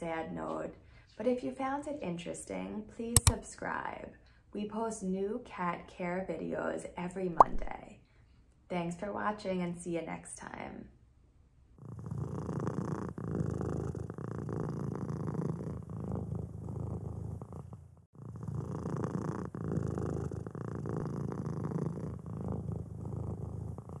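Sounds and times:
cat purring: 0:11.8 - 0:24.0.

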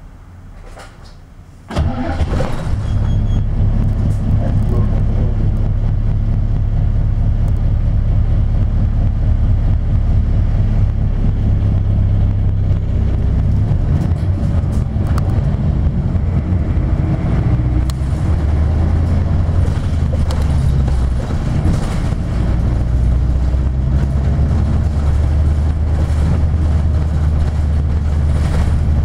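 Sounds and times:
bus diesel engine rumbling: 0:00.0 - 0:29.0.

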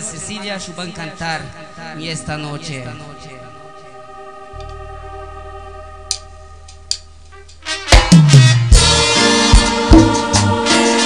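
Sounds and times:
electronic keyboard chord: 0:00.0 - 0:11.0.

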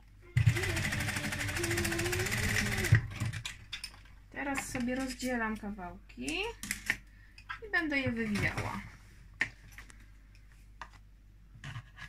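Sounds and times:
sewing machine stitching: 0:00.4 - 0:03.5.

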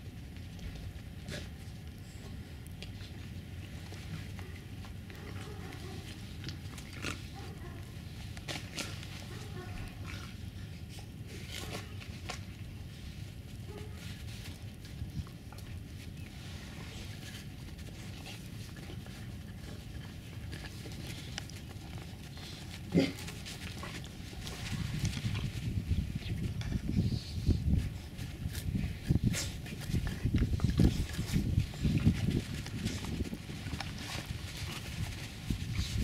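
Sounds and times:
paws crunching on snow: 0:11.3 - 0:26.9, 0:27.5 - 0:36.0
puppy vocal noises: 0:18.8 - 0:24.8.

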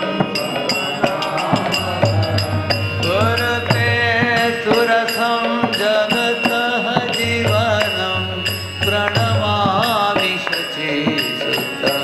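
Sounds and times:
sustained drone tone: 0:00.0 - 0:05.1
percussion beat: 0:00.0 - 0:12.0.

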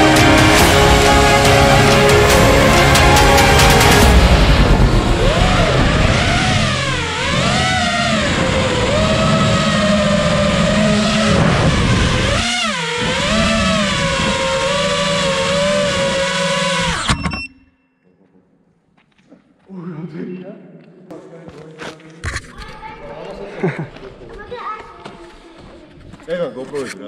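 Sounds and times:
drone motors whining: 0:00.0 - 0:17.7.

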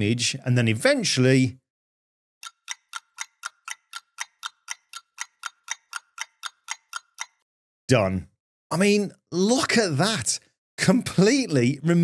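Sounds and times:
clock-style ticking: 0:02.4 - 0:07.5.

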